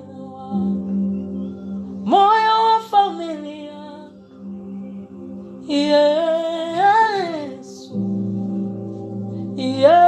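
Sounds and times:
soft backing music: 0.0s - 10.0s.

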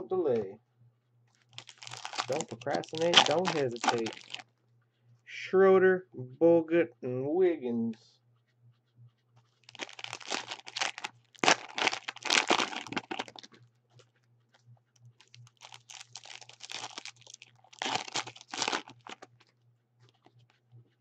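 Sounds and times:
plastic wrappers crinkling and tearing: 1.3s - 4.4s, 9.6s - 14.0s, 15.2s - 19.5s.

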